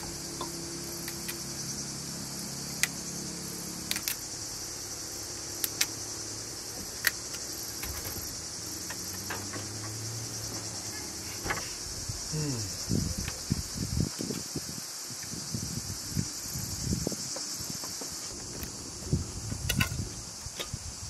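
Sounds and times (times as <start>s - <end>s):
crickets chirping: 0.0s - 21.0s.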